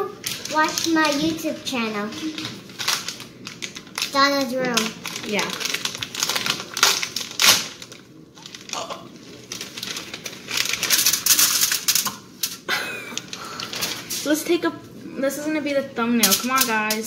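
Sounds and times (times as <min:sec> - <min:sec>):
sharp packaging clicks: 0:00.2 - 0:14.2, 0:16.2 - 0:17.0
packaging crinkling: 0:00.2 - 0:14.3.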